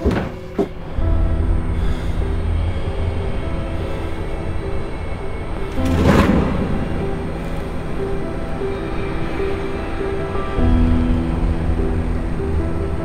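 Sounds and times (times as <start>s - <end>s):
dark film score music: 0.0s - 13.0s.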